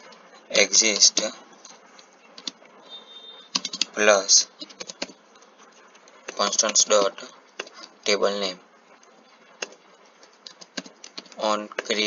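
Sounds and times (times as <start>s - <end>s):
computer keyboard typing: 2.0s - 2.8s, 3.5s - 8.2s, 9.0s - 12.0s.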